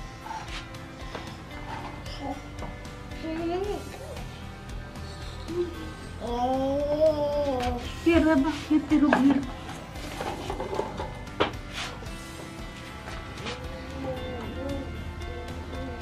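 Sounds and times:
background music: 0:00.0 - 0:16.0
toddler sing-song voice: 0:05.5 - 0:07.9
toddler babbling excitedly: 0:06.2 - 0:07.8.

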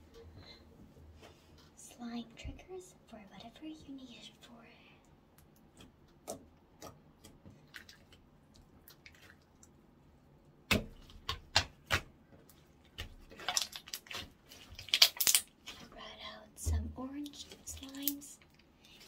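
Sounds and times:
slime squelching and popping: 0:10.6 - 0:15.9.

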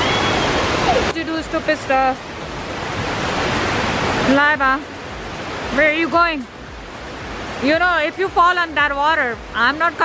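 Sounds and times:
fast-running stream: 0:00.0 - 0:10.0.

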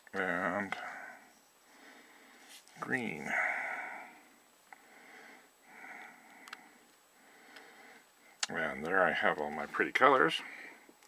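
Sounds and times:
quiet breathing: 0:00.6 - 0:08.4, 0:09.0 - 0:11.0.

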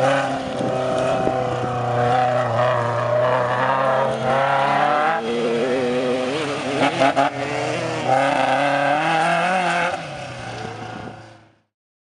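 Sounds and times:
truck engine revving hard: 0:00.0 - 0:10.3.

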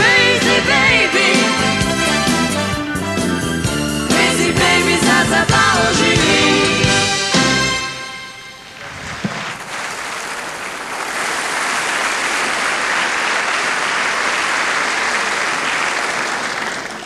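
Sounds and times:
audience applauding: 0:09.2 - 0:17.0.

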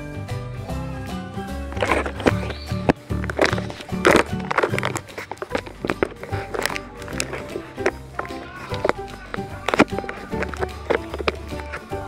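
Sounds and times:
music with bass line: 0:00.0 - 0:12.0.

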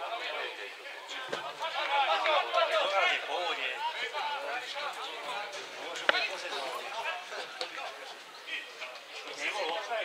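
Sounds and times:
men chatting: 0:00.0 - 0:10.0.

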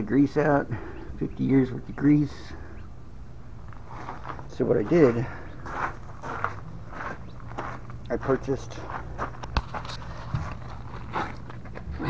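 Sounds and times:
low steady hum: 0:00.0 - 0:12.0
footsteps on gravel: 0:03.6 - 0:12.0.

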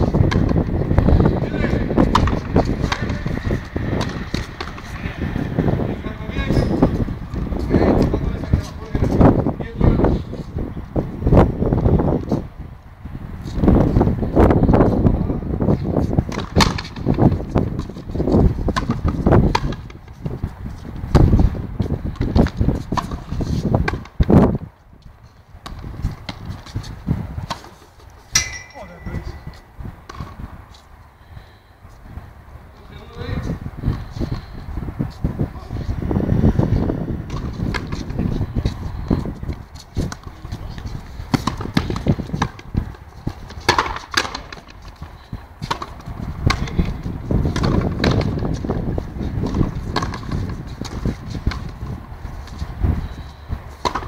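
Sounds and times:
running footsteps on court: 0:00.0 - 0:12.5, 0:32.8 - 0:54.0
ball knocking off rackets and walls: 0:00.1 - 0:00.7, 0:01.9 - 0:05.1, 0:16.3 - 0:17.9, 0:18.7 - 0:20.0, 0:41.3 - 0:45.0, 0:45.6 - 0:48.6, 0:49.4 - 0:51.8, 0:53.8 - 0:54.0
ball slapping against wall: 0:02.1 - 0:03.2, 0:18.7 - 0:20.0.

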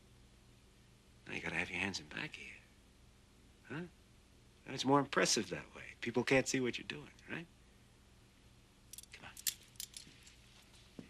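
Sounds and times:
metal handcuffs clicking and jangling: 0:08.9 - 0:10.4.

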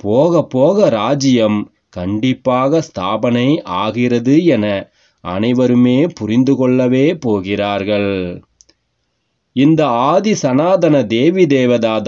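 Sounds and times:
man reading aloud: 0:00.0 - 0:08.6, 0:09.5 - 0:12.0
faint click: 0:08.5 - 0:08.8.

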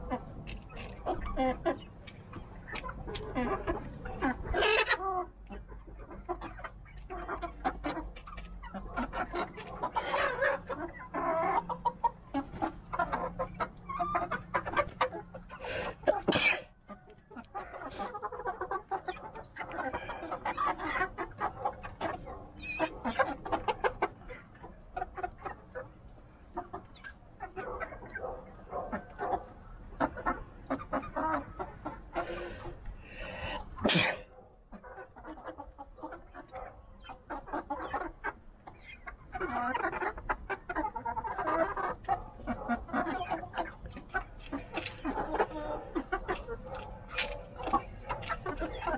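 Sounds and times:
hens clucking: 0:00.0 - 0:48.9.

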